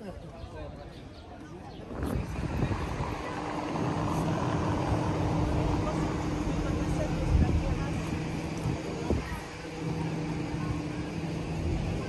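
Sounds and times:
vehicle engine running: 2.0s - 12.0s.

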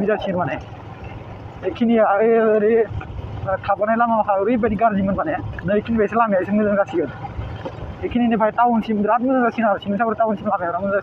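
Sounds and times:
person talking: 0.0s - 0.7s, 1.6s - 7.2s, 8.0s - 11.0s
motorbike engine rumble: 0.0s - 11.0s.

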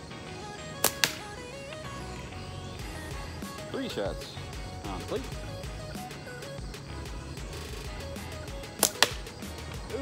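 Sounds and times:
background music: 0.0s - 10.0s
slingshot snap: 0.8s - 1.4s, 8.7s - 9.3s.

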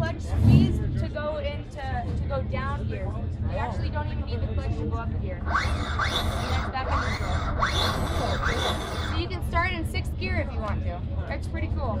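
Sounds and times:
electric motorcycle motor whining: 5.4s - 9.4s
steady high tone: 5.4s - 9.6s.

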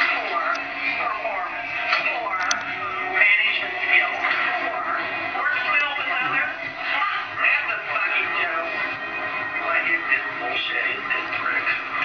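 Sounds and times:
people talking: 0.0s - 8.9s, 9.5s - 12.0s.

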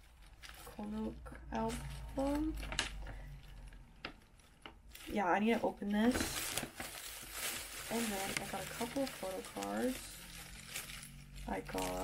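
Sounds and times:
handling noise of wrapped case: 0.0s - 12.0s
low steady hum: 0.0s - 12.0s.

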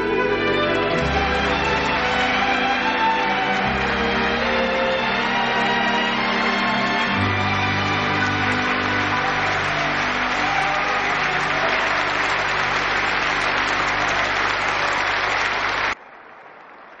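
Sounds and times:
held notes of accompaniment: 0.0s - 15.9s
audience applause: 0.6s - 17.0s.

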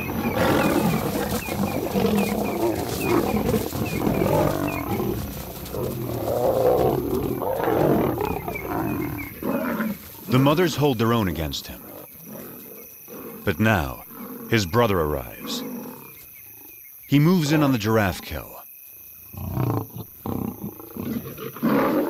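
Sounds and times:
lions snarling and roaring: 0.0s - 18.4s, 19.3s - 22.0s.

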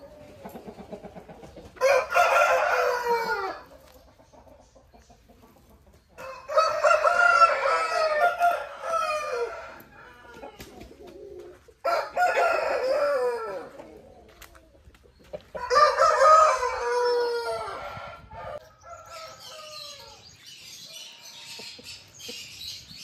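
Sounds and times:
roosters crowing: 1.7s - 3.9s, 6.2s - 14.1s, 15.6s - 22.3s.

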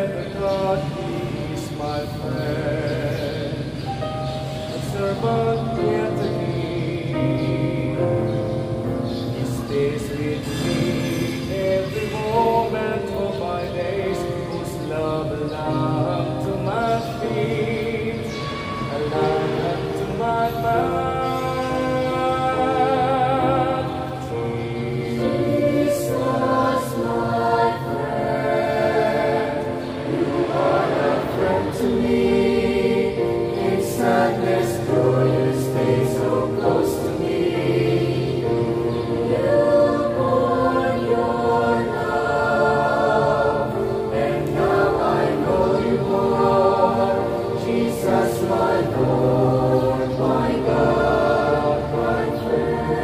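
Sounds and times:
choir singing a hymn: 0.0s - 53.0s
musical accompaniment: 0.0s - 53.0s.

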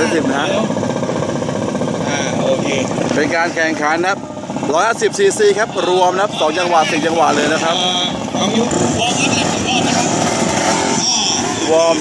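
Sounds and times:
racing motorcycle engines: 0.0s - 12.0s.

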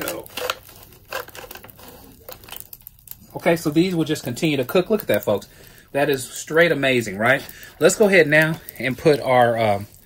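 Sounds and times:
foil pan ticks and scrapes: 0.0s - 5.4s.

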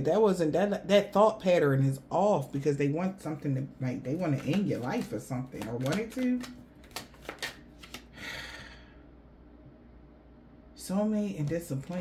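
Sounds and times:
faint low room hum: 0.0s - 12.0s
person sighing: 8.1s - 9.0s.

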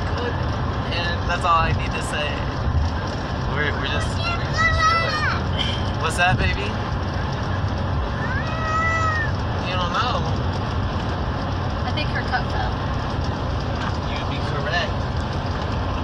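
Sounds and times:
road rumble inside a car: 0.0s - 16.0s
toddler squealing: 8.1s - 9.4s.

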